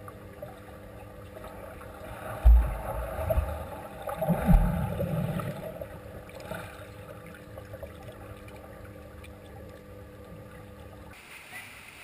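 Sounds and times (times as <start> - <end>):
churning water and bubbles: 0.0 - 11.2
low underwater hum: 0.0 - 12.0
bubbles crackling: 1.3 - 11.2.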